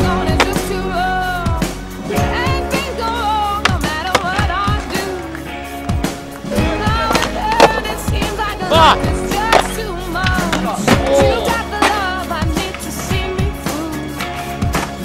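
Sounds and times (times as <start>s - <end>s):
music with sung vocal: 0.0s - 15.0s
skateboard pops and landings on concrete: 3.6s - 5.5s, 6.9s - 8.1s, 9.3s - 11.2s, 11.8s - 13.2s.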